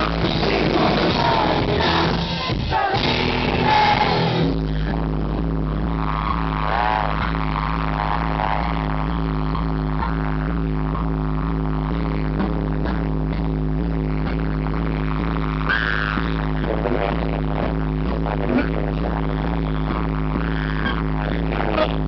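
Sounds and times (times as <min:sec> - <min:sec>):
steady pulsing beat: 0:00.0 - 0:22.0.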